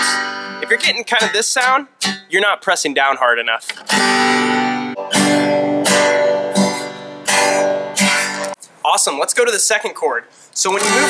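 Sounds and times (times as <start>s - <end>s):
acoustic guitar strumming chord: 0.0s - 1.3s, 3.9s - 8.6s, 10.8s - 11.0s.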